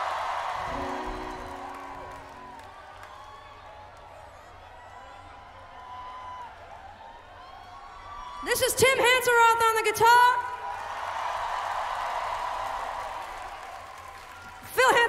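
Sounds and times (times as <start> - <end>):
crowd cheering and whooping: 0.0 - 8.5, 10.6 - 14.9
held instrument notes: 0.7 - 2.8.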